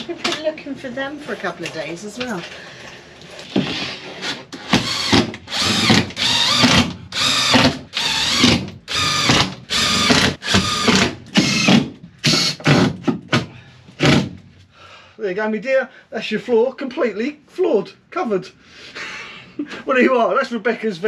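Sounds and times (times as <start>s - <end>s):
cordless drill driving screws: 4.2s - 12.9s.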